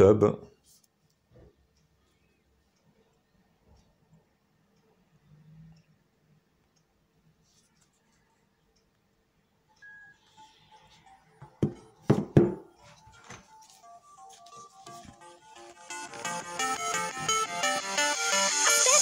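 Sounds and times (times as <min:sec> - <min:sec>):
electronic music from phone: 0:09.7 - 0:19.0
smartphone knocking on table: 0:11.6 - 0:12.6.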